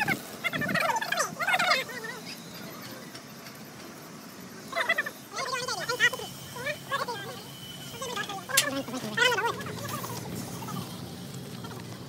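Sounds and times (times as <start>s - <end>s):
animal calling rapidly wavering: 0.0s - 3.1s, 4.6s - 11.8s.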